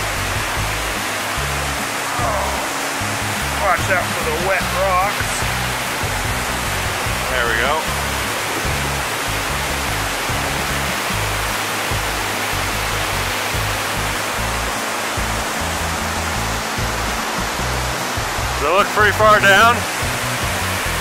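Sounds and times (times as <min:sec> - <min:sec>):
waterfall rushing: 0:00.0 - 0:21.0.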